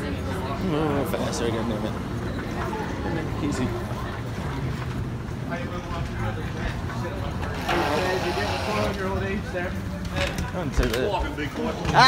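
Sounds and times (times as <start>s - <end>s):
people talking as they walk: 0.0s - 12.0s.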